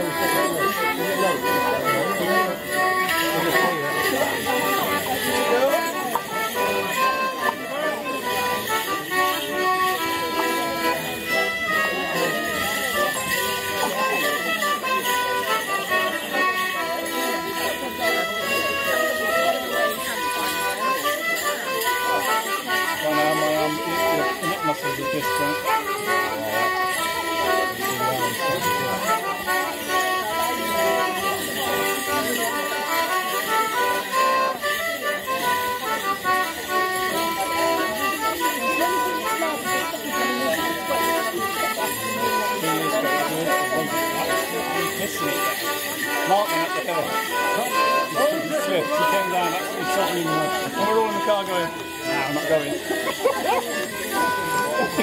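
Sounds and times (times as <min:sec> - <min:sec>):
folk dance tune on folk instruments: 0:00.0 - 0:55.0
leg bells jingling: 0:00.0 - 0:55.0.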